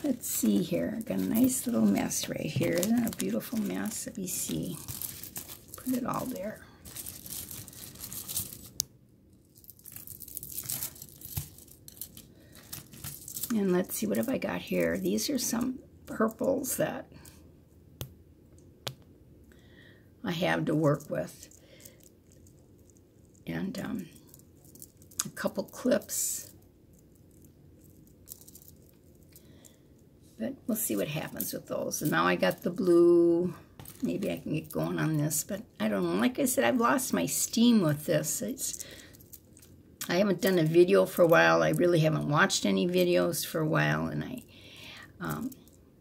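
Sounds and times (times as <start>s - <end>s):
hands rummaging through bracelets: 0.0s - 8.8s, 9.4s - 16.4s, 20.7s - 23.5s, 24.2s - 29.8s, 33.8s - 35.2s, 38.6s - 39.7s.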